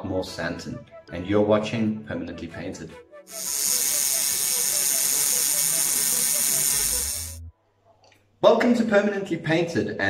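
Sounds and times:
steady hiss: 3.3 - 7.4
ratchet-like ticking: 3.3 - 7.5.

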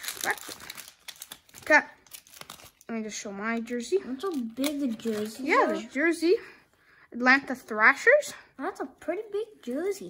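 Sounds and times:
plastic packaging crinkling: 0.0 - 2.9, 4.1 - 5.8.

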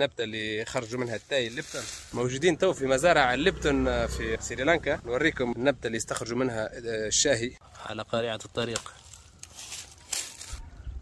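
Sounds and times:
leaves rustling: 0.6 - 2.6, 7.6 - 10.8.

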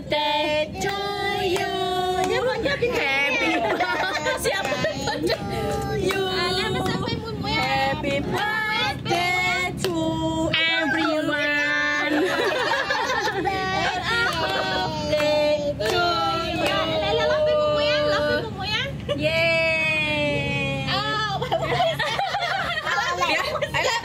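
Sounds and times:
women and children singing: 0.0 - 18.6
people talking: 0.7 - 24.0.

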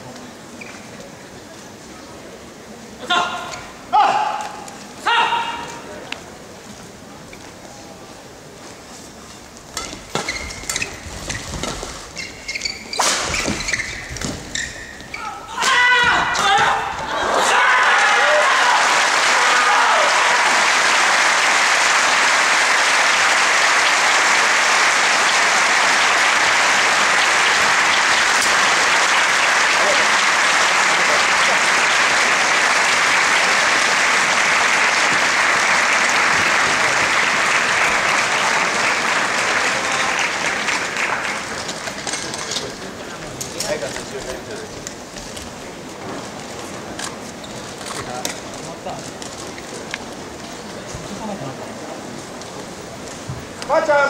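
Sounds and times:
voices shouting: 15.1 - 20.6
crowd applauding and cheering: 17.1 - 42.3.

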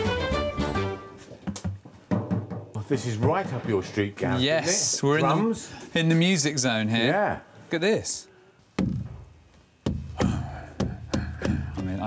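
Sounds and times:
frame drum booming beats: 8.8 - 12.0.

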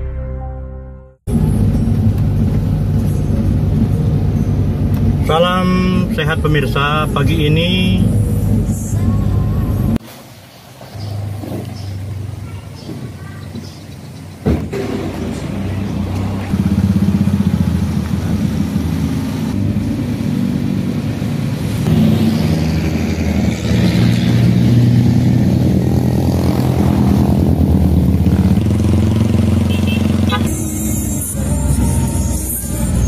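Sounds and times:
vehicle engine running: 1.3 - 10.0, 10.6 - 33.0.

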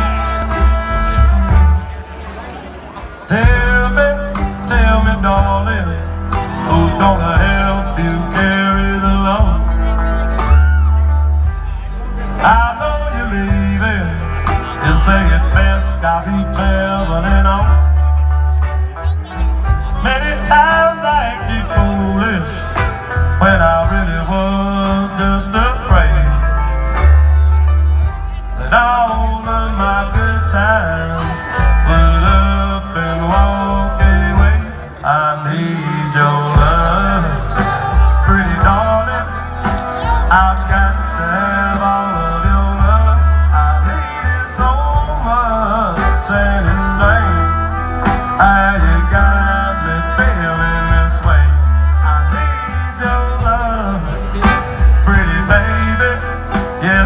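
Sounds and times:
man singing: 0.0 - 2.0, 3.2 - 57.0
bending guitar lead: 0.0 - 57.0
live country band playing: 0.0 - 57.0.

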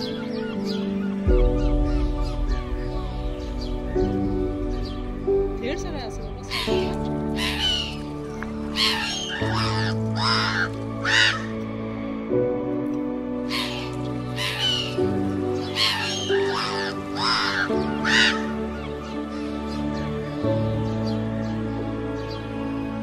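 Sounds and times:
slow sustained music chords: 0.0 - 23.0
crow-like calls: 6.5 - 11.6, 13.4 - 19.2.

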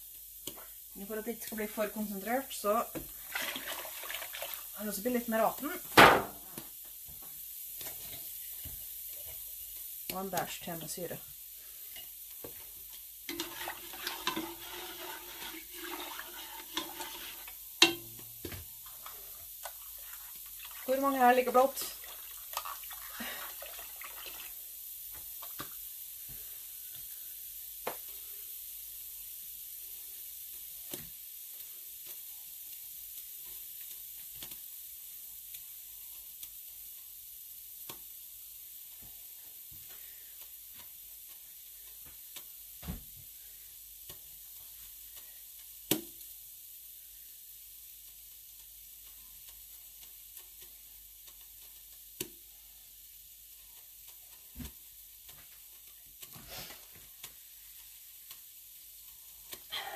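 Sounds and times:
dye bath fizzing hiss: 0.0 - 59.9
small pops and clicks: 45.6 - 46.3, 48.2 - 52.4.

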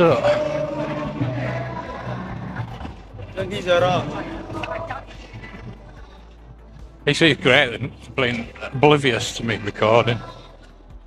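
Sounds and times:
people's voices: 0.0 - 10.9
faint music: 0.0 - 11.0.

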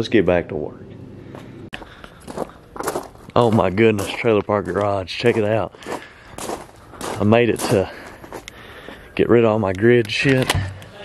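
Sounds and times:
footsteps on gravel: 1.3 - 10.0.

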